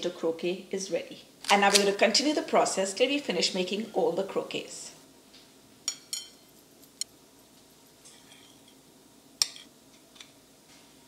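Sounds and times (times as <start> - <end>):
metal fork clinking on ceramic bowl: 5.9 - 6.4.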